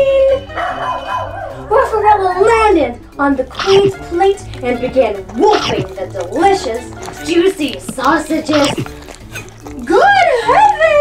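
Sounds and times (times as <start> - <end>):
dog yipping and barking: 3.5 - 4.1, 5.4 - 6.0, 8.4 - 9.2
dog howling: 5.5 - 6.0.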